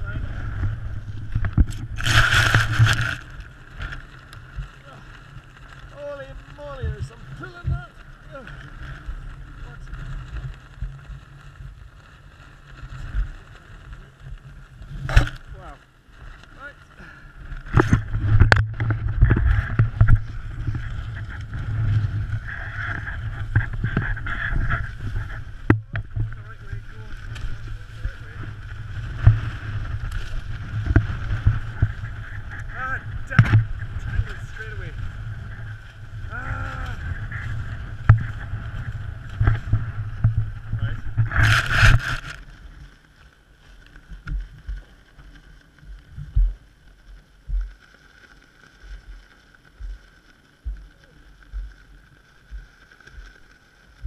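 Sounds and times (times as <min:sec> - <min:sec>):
wind buffeting microphone: 0:00.0 - 0:04.0, 0:17.6 - 0:42.4.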